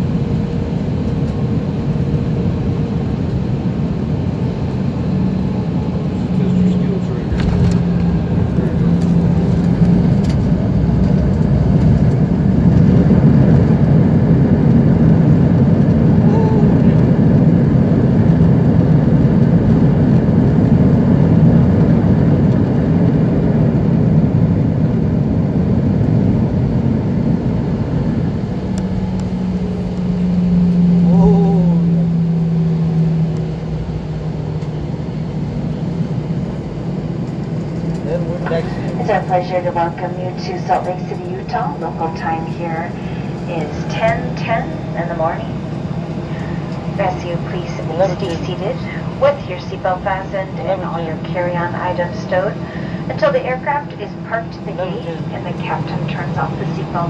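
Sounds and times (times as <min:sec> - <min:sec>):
jet engines roaring: 0:00.0 - 0:57.0
low cabin hum: 0:00.0 - 0:57.0
air rushing over wing: 0:07.0 - 0:16.2, 0:38.4 - 0:47.0.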